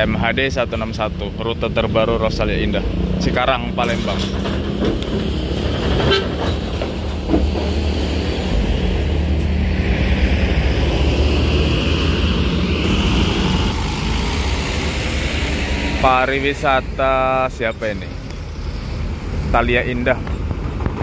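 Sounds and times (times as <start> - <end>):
bus engine drone: 0.0 - 21.0.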